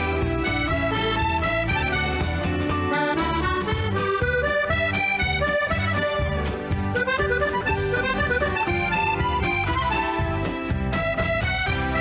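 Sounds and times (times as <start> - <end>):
accordion playing dance tune: 0.0 - 12.0.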